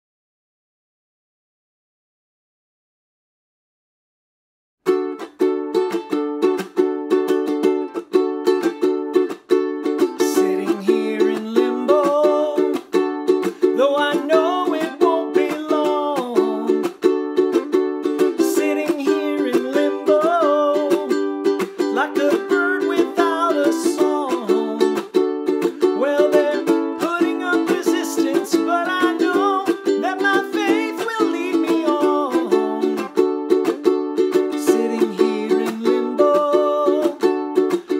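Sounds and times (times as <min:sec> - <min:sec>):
ukulele strumming: 0:04.8 - 0:37.9
person humming a melody: 0:34.7 - 0:37.2.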